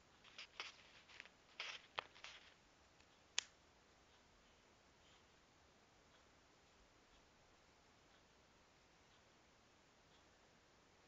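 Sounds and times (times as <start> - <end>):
soft rustles: 0.1 - 2.6.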